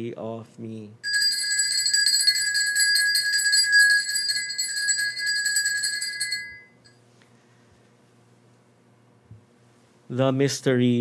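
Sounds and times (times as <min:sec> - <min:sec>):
altar bells jingling: 0:01.0 - 0:06.9.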